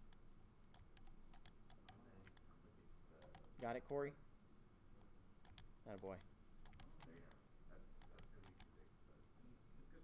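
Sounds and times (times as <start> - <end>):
mouse buttons clicking: 0.0 - 2.5, 3.2 - 4.0, 5.0 - 7.4, 8.0 - 8.9
keyboard keys clicking: 8.0 - 8.7.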